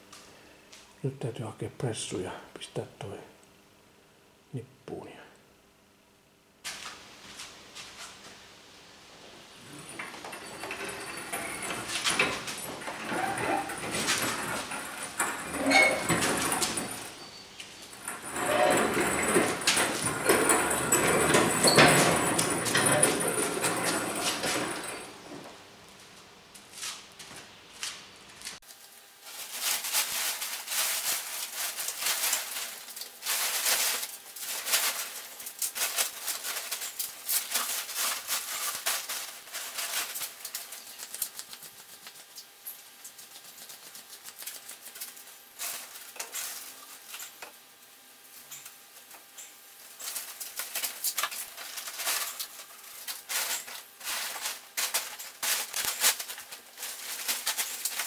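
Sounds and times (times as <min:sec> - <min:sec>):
plastic tarp crinkling: 0:28.6 - 0:47.3, 0:49.8 - 0:58.0.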